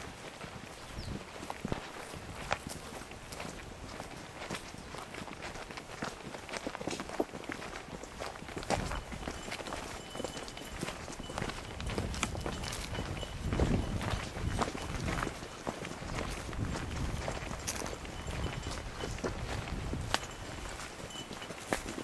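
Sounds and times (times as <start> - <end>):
footsteps crunching on dry ground: 0.0 - 22.0.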